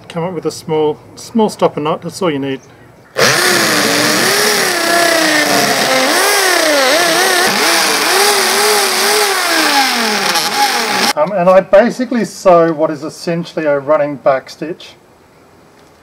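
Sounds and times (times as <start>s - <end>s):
electric drill whining: 3.2s - 11.2s.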